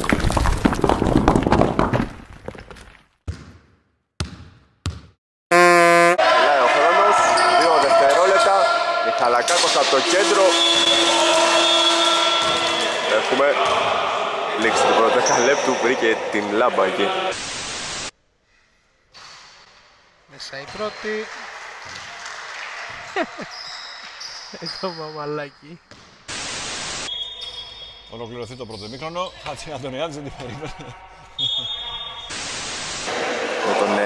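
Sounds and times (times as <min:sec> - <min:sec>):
high-pitched electronic tone: 0:05.5 - 0:06.2
burst of static hiss: 0:17.3 - 0:18.1, 0:26.3 - 0:27.1, 0:32.3 - 0:33.2.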